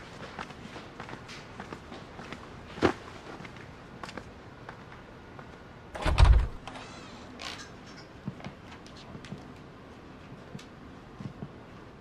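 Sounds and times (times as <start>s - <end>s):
door shutting thump: 6.0s - 6.7s
door latch clicks: 6.0s - 6.8s.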